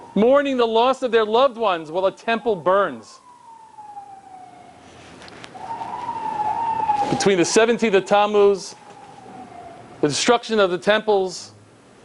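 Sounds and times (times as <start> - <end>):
distant siren wailing: 0.0 - 11.1.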